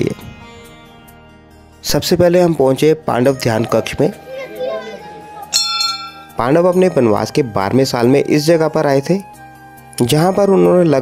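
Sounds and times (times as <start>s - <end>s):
brass bell ringing: 5.5s - 6.4s.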